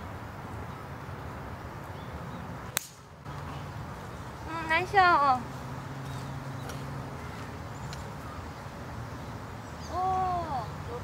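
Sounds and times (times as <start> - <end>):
steady outdoor background: 0.0 - 11.0.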